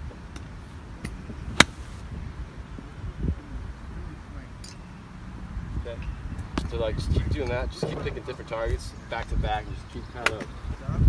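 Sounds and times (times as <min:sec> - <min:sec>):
golf club striking ball: 0:01.0 - 0:01.9.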